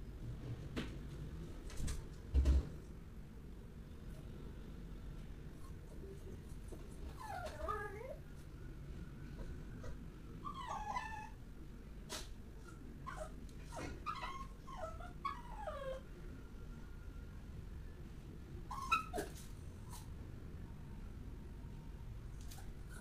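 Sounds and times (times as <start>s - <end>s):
dog whimpering and whining: 7.1s - 8.3s, 9.4s - 11.4s, 12.6s - 16.1s, 18.7s - 20.0s, 22.6s - 23.0s.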